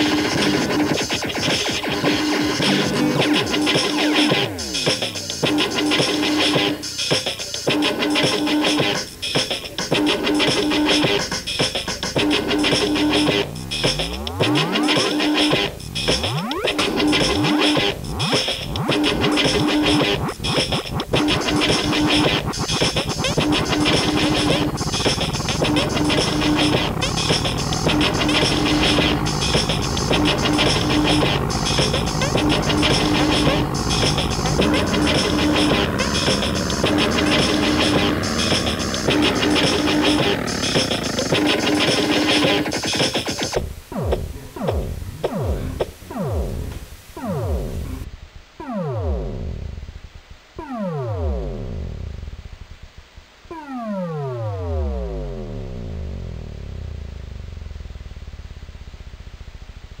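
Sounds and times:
fast high ticking: 0:00.0 - 0:46.5
loud techno beat: 0:00.0 - 0:46.7
synthesizer tone sweeping down: 0:09.8 - 0:50.0, 0:50.6 - 0:52.8, 0:53.5 - 1:00.0
fluttering low drone: 0:23.3 - 0:42.4.

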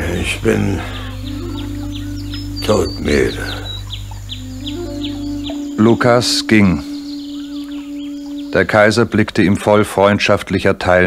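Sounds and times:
soft held low tones music: 0:00.0 - 0:11.0.

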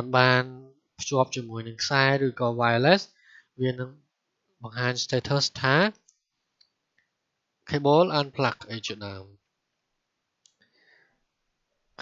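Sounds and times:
person lecturing: 0:00.0 - 0:03.9, 0:04.6 - 0:06.0, 0:07.7 - 0:09.3
faint clicks: 0:06.0 - 0:07.2, 0:10.4 - 0:10.8.

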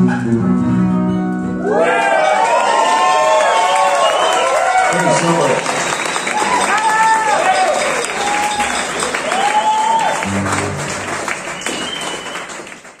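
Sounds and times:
whoops: 0:01.6 - 0:04.9, 0:06.3 - 0:10.3
audience applauding and cheering: 0:01.6 - 0:13.0.

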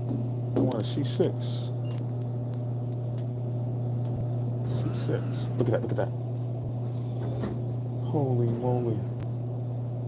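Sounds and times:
vending machine hum: 0:00.0 - 0:10.0.

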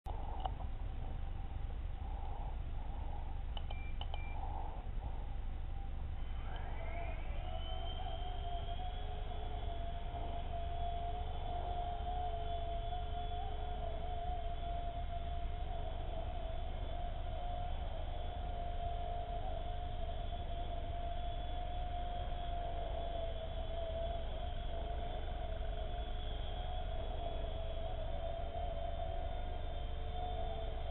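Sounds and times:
short beeps: 0:03.6 - 0:04.4.

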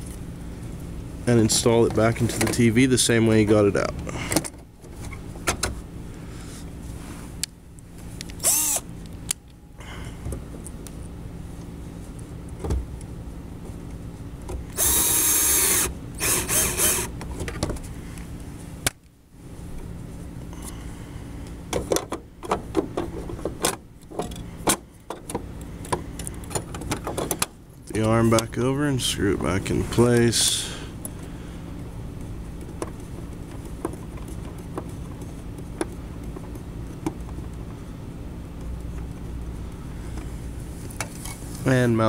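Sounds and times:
electric screwdriver whirring: 0:08.4 - 0:08.9, 0:14.8 - 0:17.1.

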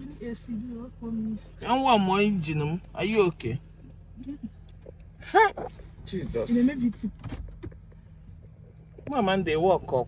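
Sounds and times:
car engine hum inside cabin: 0:00.0 - 0:10.0.

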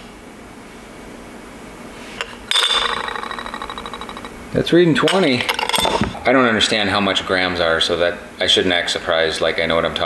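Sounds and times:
metal spoon rattling on glass: 0:02.5 - 0:04.4.

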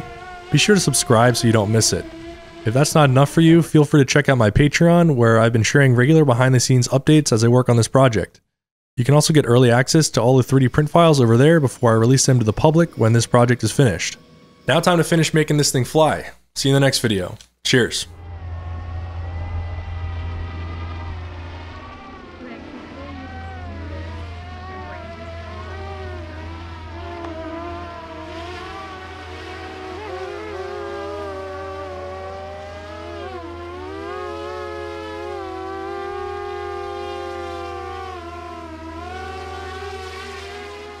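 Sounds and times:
drone motors whining: 0:00.0 - 0:03.7, 0:18.1 - 0:41.0.

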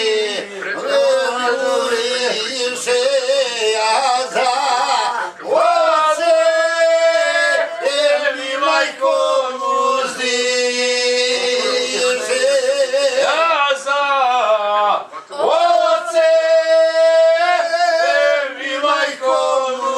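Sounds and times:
man singing unaccompanied: 0:00.0 - 0:19.9.

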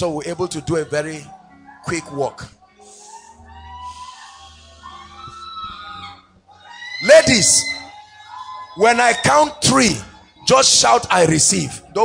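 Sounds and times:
faint congregation voices: 0:00.0 - 0:12.0
soft background music: 0:00.0 - 0:12.0.

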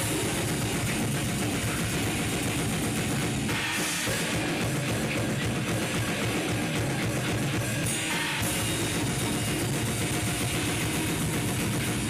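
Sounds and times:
fast low drum strokes: 0:00.0 - 0:12.0
metal band playing: 0:00.0 - 0:12.0.

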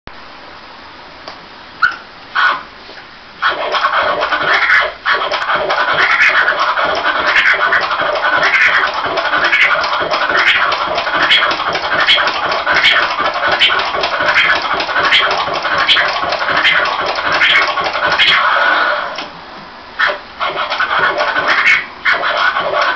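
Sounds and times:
vinyl record scratching: 0:03.4 - 0:19.3, 0:20.0 - 0:22.9.

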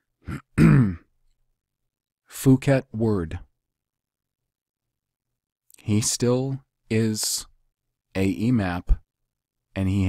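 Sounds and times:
man clearing his throat: 0:00.2 - 0:01.1.

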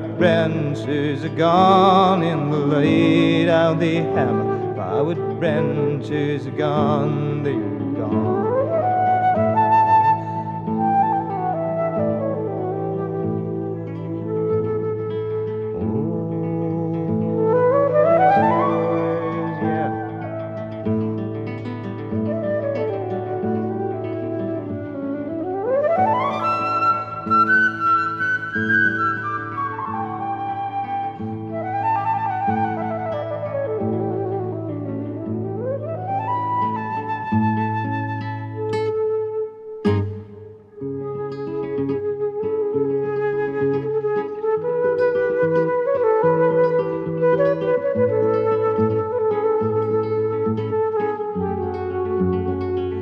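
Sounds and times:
acoustic guitar accompaniment: 0:00.0 - 0:53.0
flute melody: 0:00.0 - 0:53.0.

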